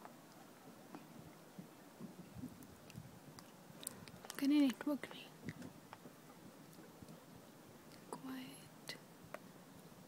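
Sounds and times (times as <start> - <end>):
faint clicks: 2.8 - 6.1.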